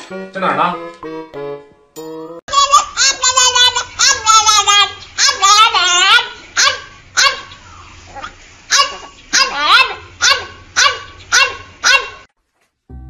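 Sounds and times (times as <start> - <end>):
dog yelping barks: 6.6 - 12.3.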